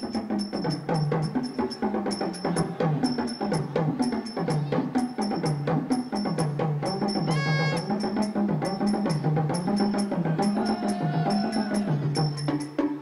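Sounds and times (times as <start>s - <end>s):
bongo drums playing: 0.0s - 13.0s.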